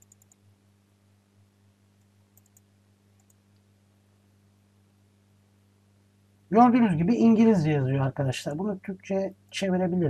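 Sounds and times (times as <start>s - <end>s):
computer mouse clicks: 0.0s - 0.4s, 2.0s - 3.6s
faint steady hum: 0.0s - 10.0s.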